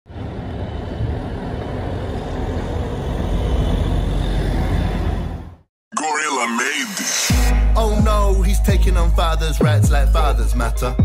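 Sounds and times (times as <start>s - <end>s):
street traffic rumble: 0.1s - 5.7s.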